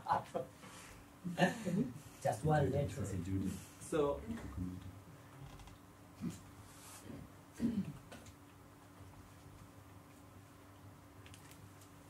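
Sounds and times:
laptop keyboard typing: 11.2s - 11.6s.

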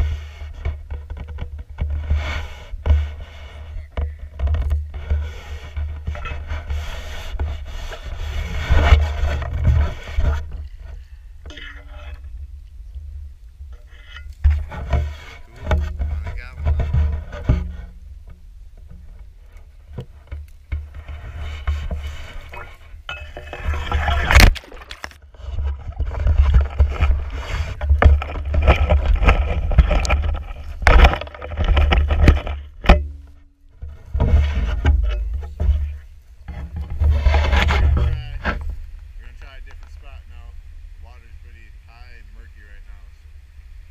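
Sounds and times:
microphone rumble: 0.0s - 43.9s
reeds scraping against camera: 0.0s - 43.9s
splashing through water: 23.6s - 25.2s.

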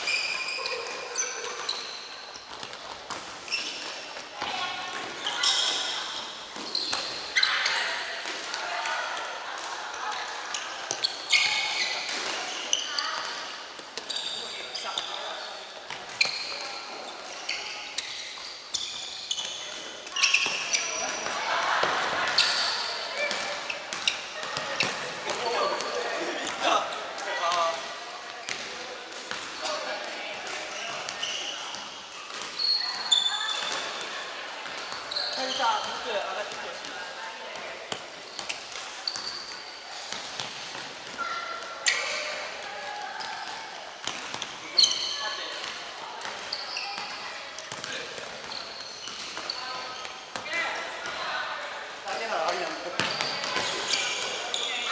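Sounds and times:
shoes squeaking on wooden floor: 0.0s - 7.9s, 14.0s - 21.3s, 30.7s - 31.9s, 34.8s - 36.8s, 38.2s - 39.7s, 46.4s - 50.6s, 52.2s - 54.9s.

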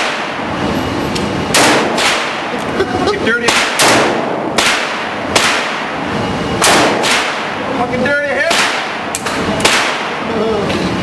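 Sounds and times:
revolver gunshot ringing indoors: 1.5s - 2.5s, 3.4s - 6.0s, 6.6s - 7.6s, 8.4s - 10.2s.

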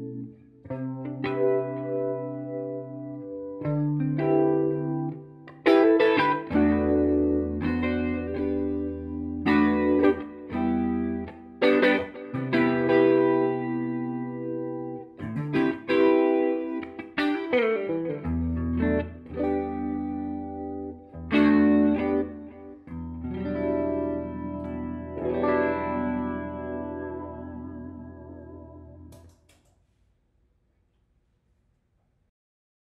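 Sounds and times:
electric guitar chords and notes: 0.0s - 29.5s.

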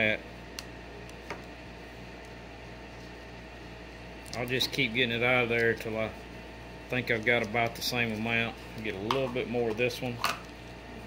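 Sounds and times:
room hum and hiss: 0.0s - 11.0s.

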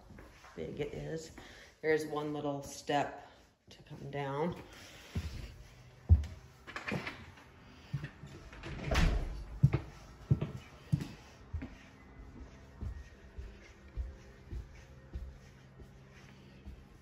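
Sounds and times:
footsteps on hardwood floor: 0.0s - 1.5s, 4.5s - 7.1s, 9.3s - 17.0s.

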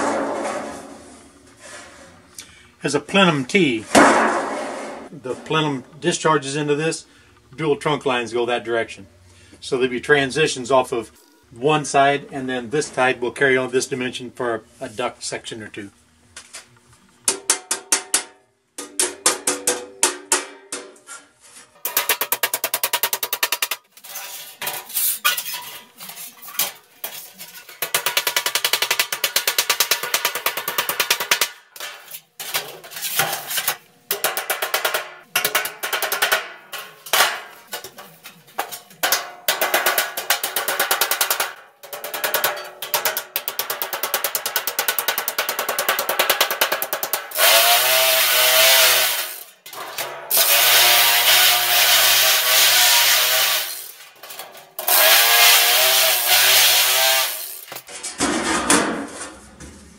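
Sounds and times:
hammering on sheet metal: 0.0s - 0.9s, 17.3s - 21.0s, 27.7s - 32.6s, 33.2s - 38.0s, 38.6s - 47.8s
power tool running: 47.1s - 49.6s, 50.3s - 54.0s, 54.8s - 57.7s.

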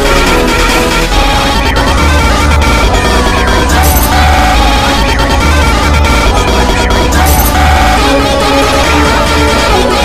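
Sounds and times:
clashing layered music: 0.0s - 10.0s.

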